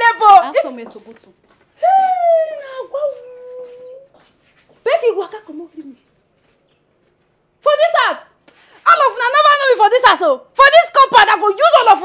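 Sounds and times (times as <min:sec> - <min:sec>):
woman's high drawn-out ooh: 0:01.8 - 0:04.1.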